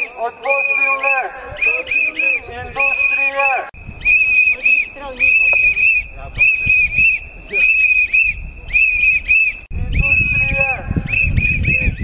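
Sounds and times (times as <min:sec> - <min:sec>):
shrill whistle blasts: 0:00.0 - 0:12.0.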